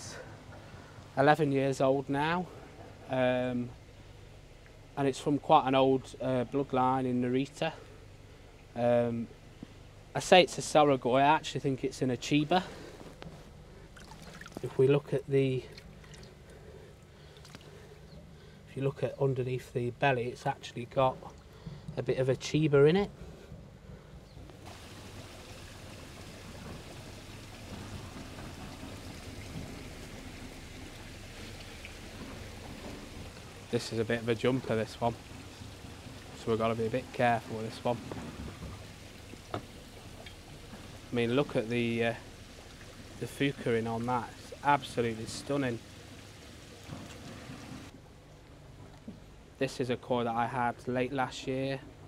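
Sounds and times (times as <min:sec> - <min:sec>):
running water rushing: 0:00.0 - 0:23.5, 0:24.4 - 0:48.0.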